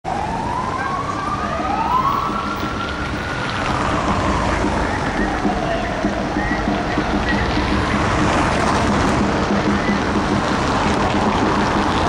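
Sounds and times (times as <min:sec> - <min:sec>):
second siren sweeping up: 0:00.1 - 0:10.4
police siren wailing: 0:00.1 - 0:12.0
street traffic rumble: 0:00.1 - 0:12.0.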